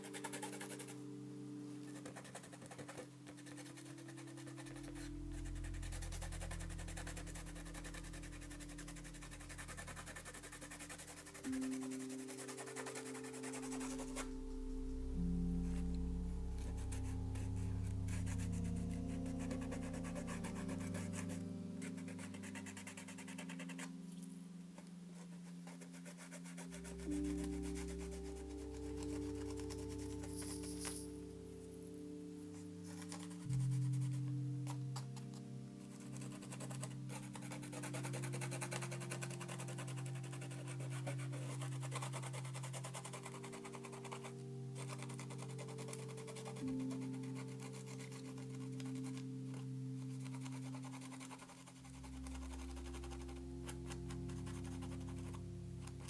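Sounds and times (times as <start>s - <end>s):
slow sustained music chords: 0.0s - 56.0s.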